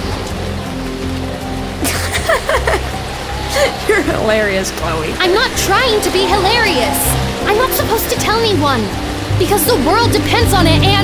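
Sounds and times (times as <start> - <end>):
heavy rain: 0.0 - 11.0
low sustained music: 0.0 - 11.0.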